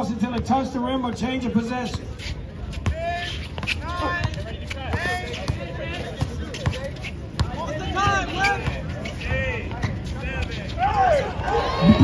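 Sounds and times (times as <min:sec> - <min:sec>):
basketball bouncing on asphalt: 0:00.2 - 0:02.1, 0:02.7 - 0:10.1.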